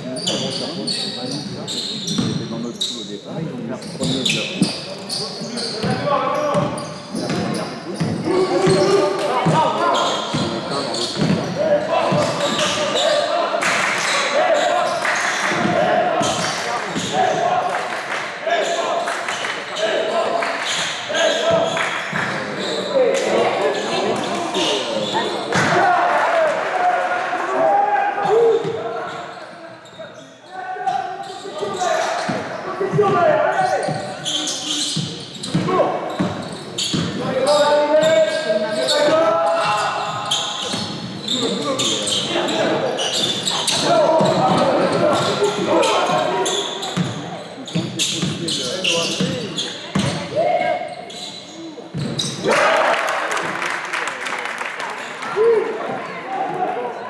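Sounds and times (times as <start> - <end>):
voices in sports hall: 0.0 - 57.0
basketball bouncing on court: 10.3 - 10.6, 11.2 - 12.4, 49.2 - 50.3, 51.9 - 52.4.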